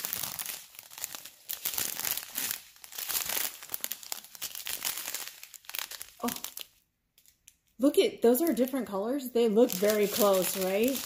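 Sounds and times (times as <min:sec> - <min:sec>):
plastic packets crinkling: 0:00.0 - 0:11.0.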